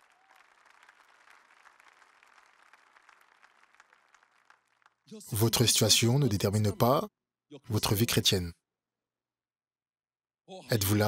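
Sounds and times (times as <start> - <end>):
crowd applauding: 0.0 - 5.2.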